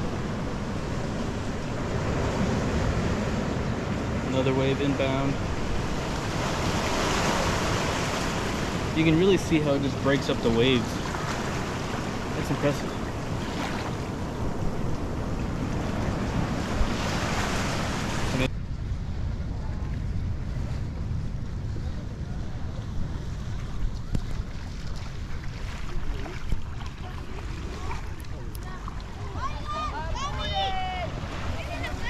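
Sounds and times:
small waves washing through roots: 0.0 - 18.5, 24.3 - 32.0
wind rumble on microphone: 0.0 - 32.0.

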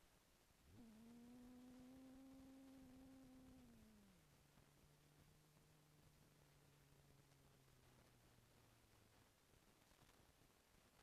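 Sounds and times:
faint hum-like tone: 0.0 - 11.0.

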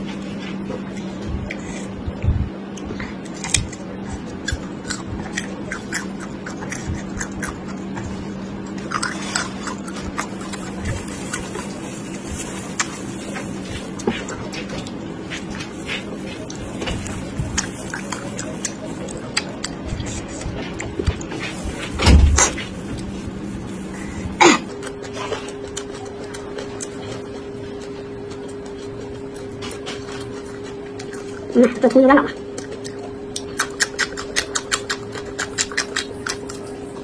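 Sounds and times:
biting and chewing: 0.0 - 37.0
steady low hum: 0.0 - 37.0
wet mouth clicks: 32.5 - 36.6.

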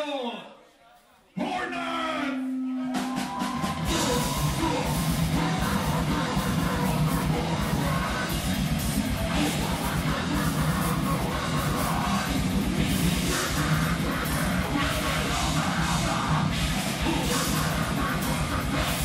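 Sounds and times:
distorted electric guitars: 2.6 - 19.0
fast drums: 2.9 - 19.0
electric bass: 3.6 - 19.0.

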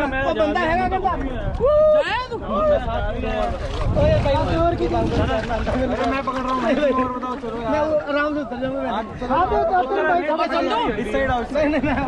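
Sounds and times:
people talking: 0.0 - 12.0
wind rumbling on microphone: 0.0 - 12.0.

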